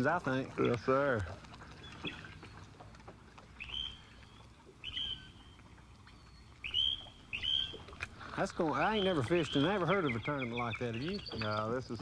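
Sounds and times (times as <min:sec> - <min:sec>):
bird calling: 0:00.3 - 0:12.0.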